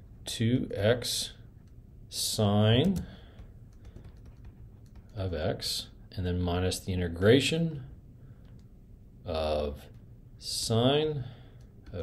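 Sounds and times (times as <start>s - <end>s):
stylus tapping tablet screen: 2.8s - 5.4s.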